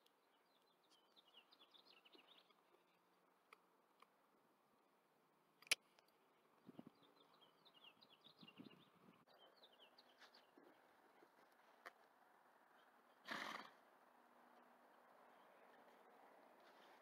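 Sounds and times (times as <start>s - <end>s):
soft hoof steps: 14.5s - 17.0s.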